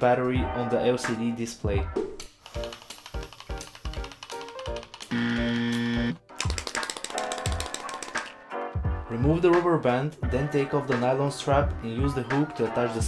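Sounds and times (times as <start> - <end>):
background music with beat: 0.0 - 13.0.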